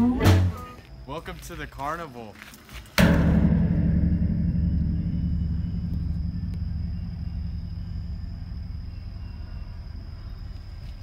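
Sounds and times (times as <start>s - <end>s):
deep boom with ringing rumble: 3.0s - 10.8s
high whine: 3.0s - 11.0s.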